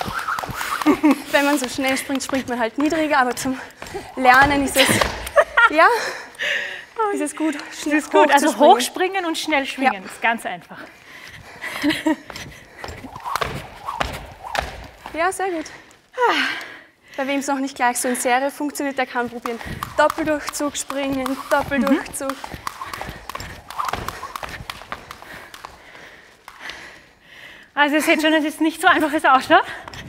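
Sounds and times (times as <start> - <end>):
feet landing: 0.0 - 6.4, 11.3 - 15.8, 19.0 - 27.0
jump rope slapping the floor: 0.0 - 6.5, 11.4 - 15.8, 19.0 - 27.0.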